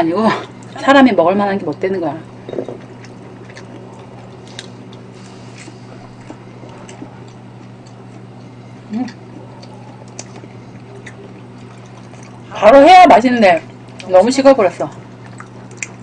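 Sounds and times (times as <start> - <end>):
low hum: 0.0 - 16.0
person chewing: 2.7 - 12.6, 14.7 - 16.0.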